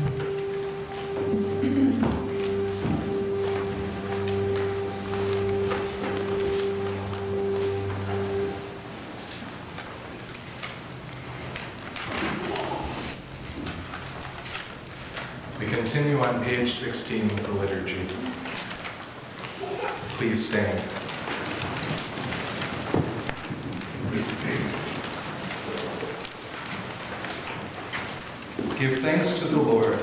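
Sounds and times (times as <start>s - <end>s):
rustle and shuffle of crowd: 0.0s - 30.0s.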